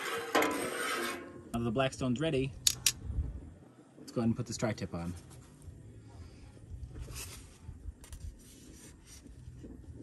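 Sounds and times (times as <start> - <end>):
wind rumble on microphone: 2.5 - 4.6, 5.6 - 10.0.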